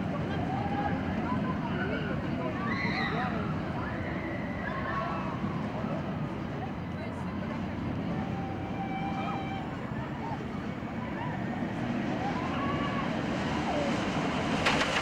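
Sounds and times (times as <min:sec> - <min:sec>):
distant voices: 0:00.0 - 0:15.0
roller coaster rumbling on track: 0:00.0 - 0:15.0.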